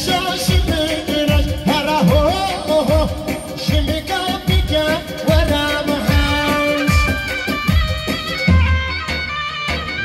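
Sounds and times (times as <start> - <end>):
man singing: 0.0 - 7.8
amplified keyboard band: 0.0 - 10.0
heavy drum beat: 0.0 - 10.0.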